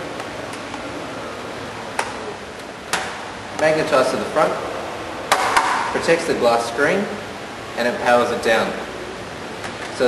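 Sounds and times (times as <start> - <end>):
steady room hum: 0.0 - 10.0.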